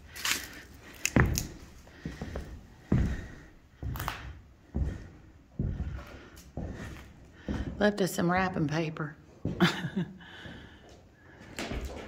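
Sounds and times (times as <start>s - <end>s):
footsteps on bare floor: 0.0s - 12.0s.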